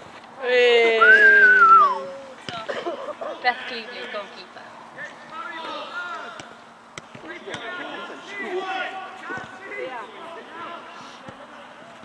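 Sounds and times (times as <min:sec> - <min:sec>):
group chattering and laughing: 0:00.4 - 0:12.0.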